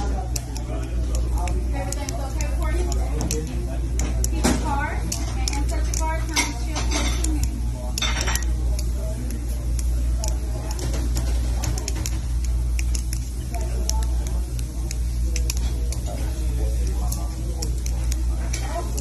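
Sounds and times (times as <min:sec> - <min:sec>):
butterfly knife clacking and clicking: 0:00.0 - 0:19.0.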